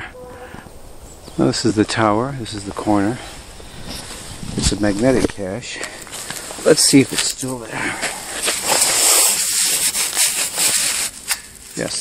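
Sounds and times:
hand rustling in dry pine needles: 2.6s - 12.0s.

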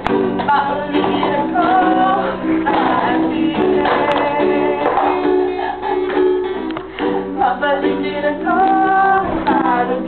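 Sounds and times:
acoustic guitar: 0.0s - 10.0s
ukulele: 0.0s - 10.0s
woman singing: 0.1s - 10.0s.

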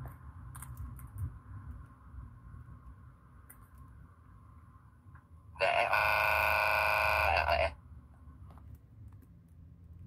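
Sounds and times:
loud buzzer tone: 5.8s - 7.6s.

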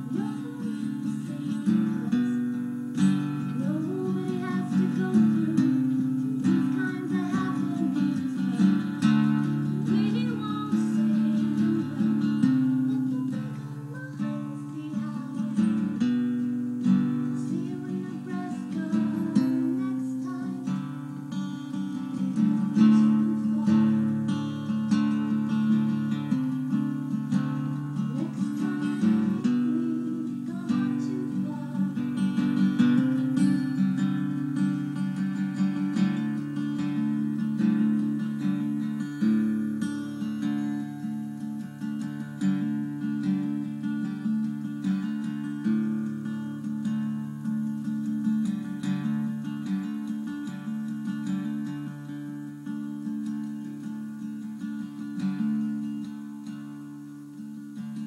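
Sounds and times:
acoustic guitar strumming: 0.0s - 58.0s
faint person singing: 0.0s - 58.0s.

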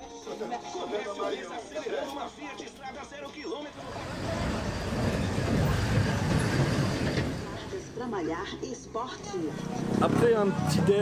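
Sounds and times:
vehicle passing: 3.8s - 11.0s.

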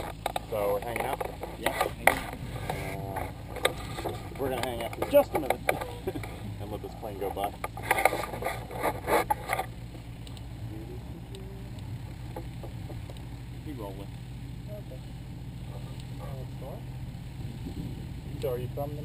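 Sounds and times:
light aircraft engine drone: 0.0s - 19.0s.

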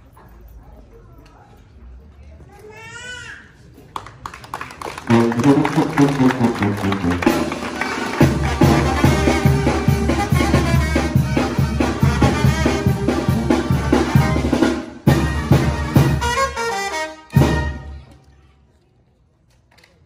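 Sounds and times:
brass band playing: 5.0s - 18.1s.

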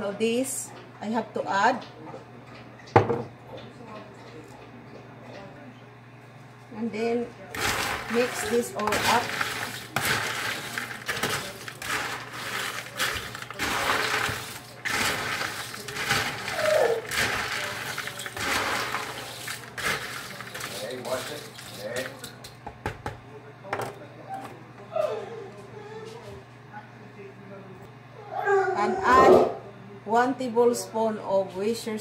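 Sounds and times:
snack mix stirred in plastic bowl: 7.5s - 22.5s.

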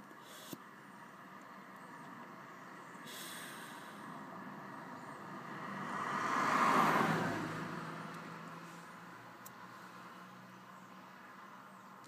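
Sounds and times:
car passing by outside: 0.2s - 12.0s.

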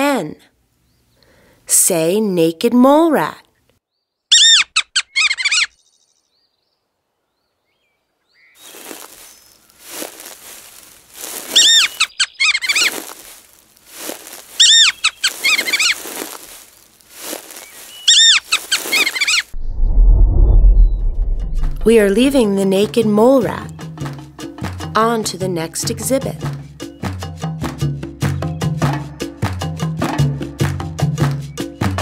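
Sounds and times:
high chirping squeaks: 4.3s - 5.8s, 11.5s - 13.0s, 14.6s - 16.4s, 17.5s - 19.5s
mole rat high squeaks: 4.3s - 5.8s, 11.5s - 13.0s, 14.6s - 16.0s, 17.9s - 19.5s
scratchy rustling noise: 8.7s - 11.9s, 12.7s - 22.4s.

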